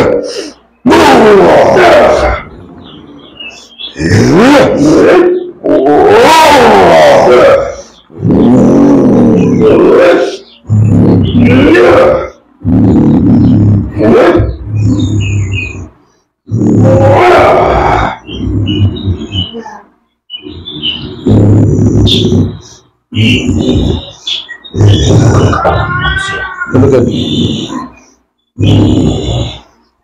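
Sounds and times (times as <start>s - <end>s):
man roaring and growling: 0.0s - 2.5s, 4.0s - 15.8s, 16.5s - 19.3s, 24.8s - 27.8s, 28.6s - 29.7s.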